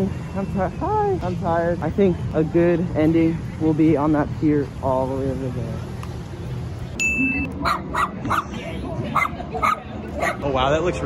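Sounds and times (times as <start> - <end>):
small dog yipping: 7.6 - 8.5, 9.1 - 10.5.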